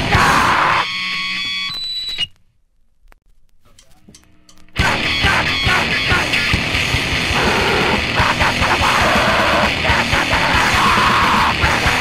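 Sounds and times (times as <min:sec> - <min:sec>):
loud distorted band music: 0:00.0 - 0:01.7, 0:04.7 - 0:12.0
faint stray sounds: 0:02.2 - 0:04.8.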